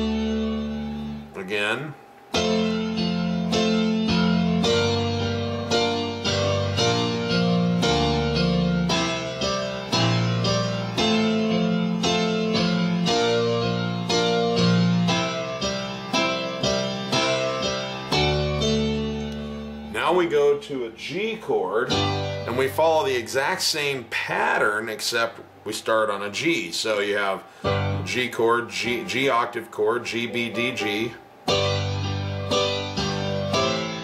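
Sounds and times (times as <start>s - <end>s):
piano chords with bass line: 0.0s - 24.1s, 26.9s - 34.0s.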